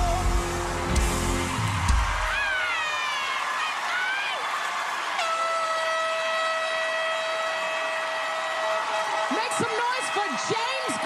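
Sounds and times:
audience noise: 0:00.0 - 0:11.0.

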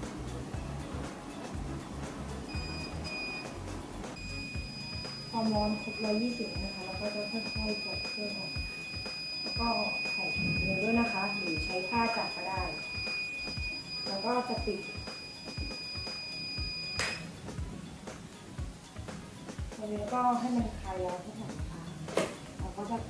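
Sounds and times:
high-pitched timer alarm tone: 0:02.5 - 0:03.6, 0:04.2 - 0:17.3.

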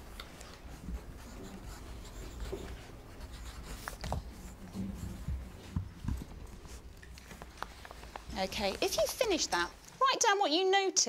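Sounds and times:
pencils scratching on paper: 0:00.5 - 0:09.7.

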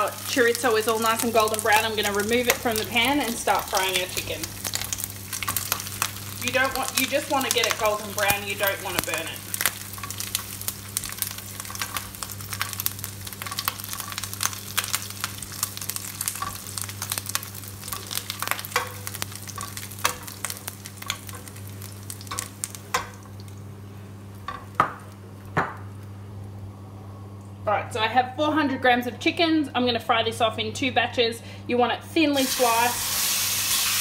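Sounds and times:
sausage slices frying and crackling: 0:00.0 - 0:26.1, 0:32.4 - 0:34.0.

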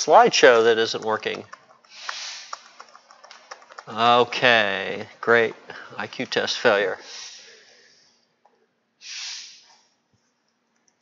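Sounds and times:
laptop keyboard clicks: 0:01.0 - 0:03.9.

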